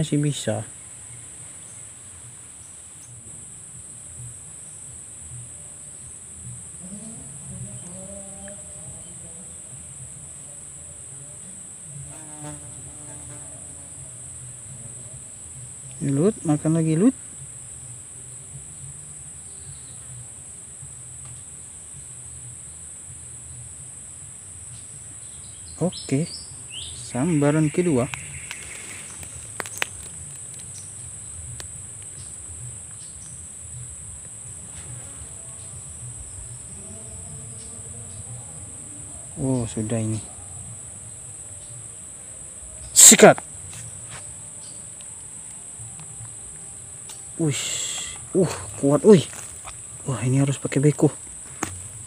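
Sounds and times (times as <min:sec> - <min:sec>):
insects chirring: 0:00.0 - 0:52.0.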